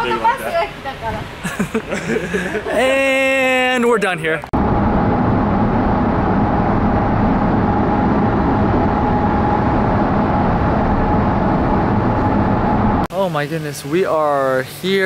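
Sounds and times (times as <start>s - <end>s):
car road and engine noise: 3.9s - 13.1s.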